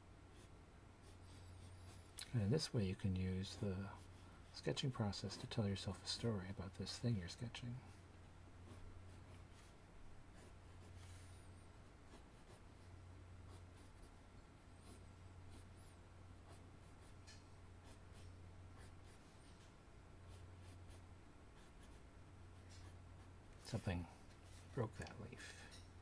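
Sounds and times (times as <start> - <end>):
low steady hum: 0.0 - 26.0
pencil scratching on paper: 0.4 - 2.1, 8.6 - 11.5, 12.1 - 12.9, 13.5 - 14.1, 14.8 - 19.7, 20.3 - 22.0, 22.6 - 23.8.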